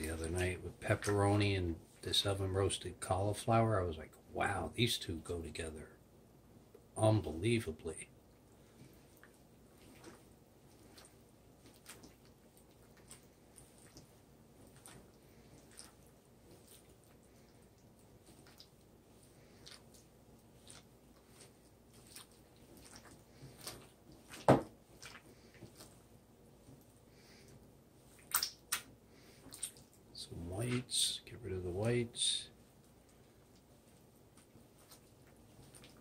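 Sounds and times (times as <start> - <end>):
hand squelching food in bowl: 8.3 - 36.0.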